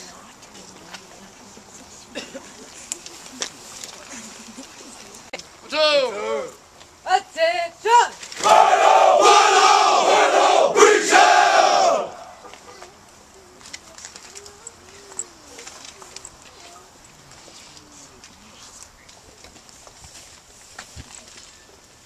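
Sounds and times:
low crowd murmur: 0.0s - 6.9s, 8.4s - 22.0s
soldiers shouting in unison: 8.0s - 12.4s.

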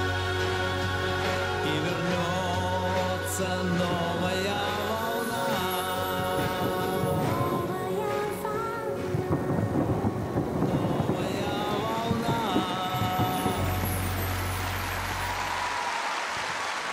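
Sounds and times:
music with sustained notes: 0.0s - 16.2s
fireworks bangs and crackle: 3.8s - 16.9s.

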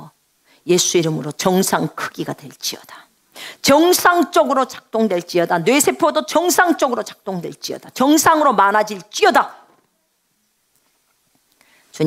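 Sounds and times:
faint room hiss: 0.0s - 12.0s
woman speaking: 0.7s - 3.0s, 3.6s - 9.6s
faint breath: 3.3s - 3.6s, 11.5s - 12.0s.

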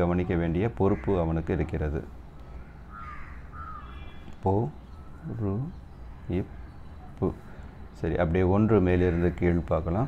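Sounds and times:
distant bird calls: 0.0s - 10.0s.

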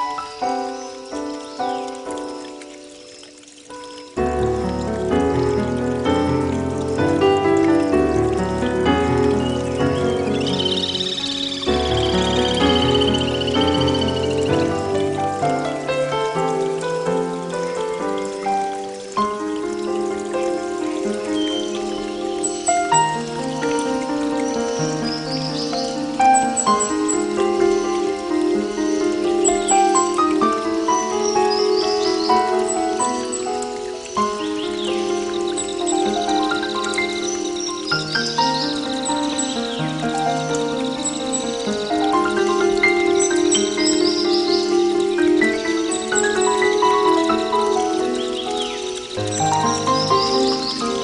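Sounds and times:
soft instrumental music: 0.0s - 51.0s.

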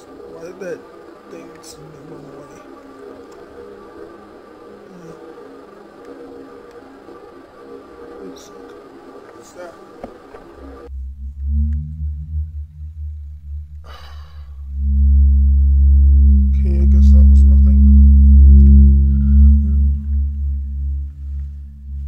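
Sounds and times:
crackling bursts: 0.0s - 12.0s
deep ominous drone: 0.0s - 22.0s.

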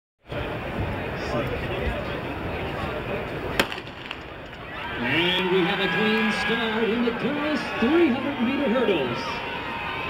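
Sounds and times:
crowd murmur: 0.2s - 10.0s
starting gun crack: 3.6s - 4.3s.

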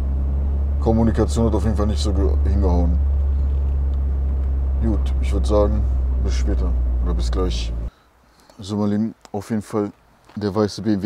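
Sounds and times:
car engine drone: 0.0s - 7.9s
road noise inside car: 0.0s - 7.9s.

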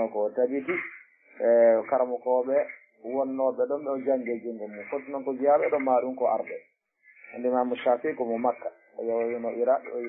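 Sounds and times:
man lecturing: 0.0s - 10.0s.

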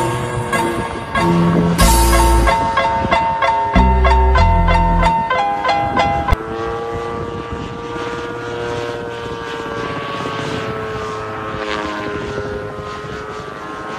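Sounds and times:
propeller aircraft engine drone: 0.0s - 13.9s
marimba-like music notes: 0.4s - 5.8s.

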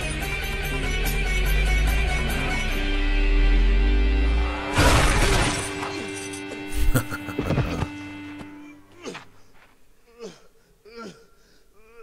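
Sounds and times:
film soundtrack music: 0.0s - 9.8s
loud crash: 4.4s - 6.0s.

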